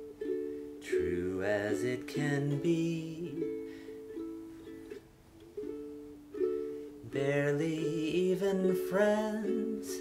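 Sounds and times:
ukulele strumming chords: 0.0s - 10.0s.

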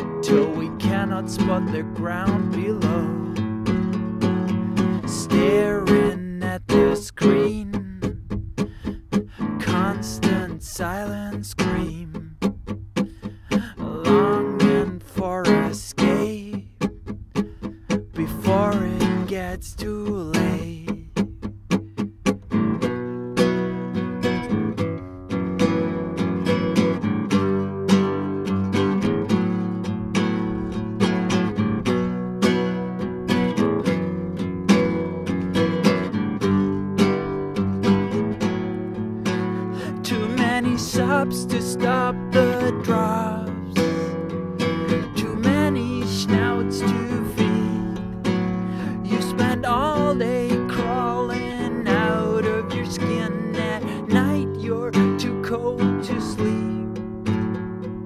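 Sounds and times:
acoustic guitar playing: 0.0s - 58.0s.

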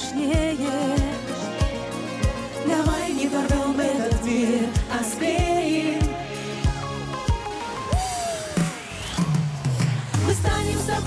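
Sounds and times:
live pop band playing: 0.0s - 11.0s.

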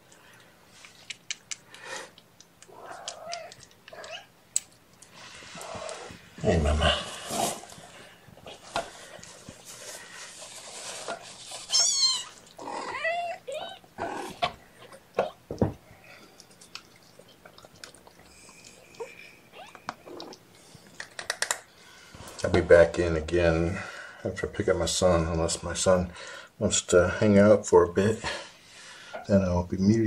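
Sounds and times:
cat chirps: 2.6s - 4.3s, 11.6s - 14.4s
cats mewing: 2.6s - 4.4s, 11.5s - 15.6s.

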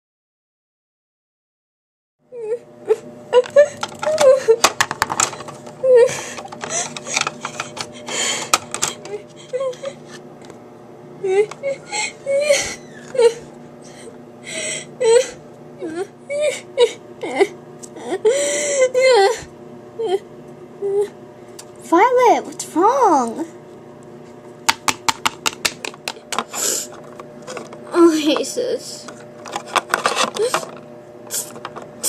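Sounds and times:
girl fake-wailing and sobbing: 2.4s - 4.7s, 5.8s - 10.0s, 11.2s - 20.2s, 20.8s - 21.2s.

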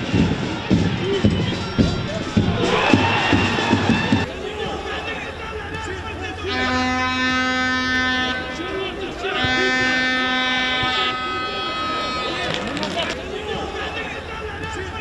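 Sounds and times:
crowd voices: 0.0s - 15.0s
air horn blasts: 6.4s - 12.6s.

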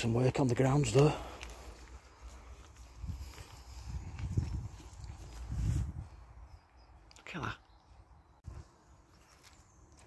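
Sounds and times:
footsteps on grass and stone: 0.0s - 6.8s, 7.9s - 10.0s.

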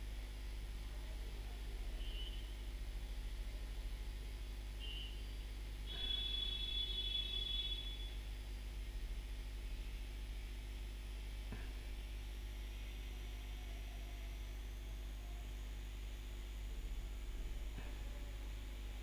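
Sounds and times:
low electrical hum: 0.0s - 19.0s.

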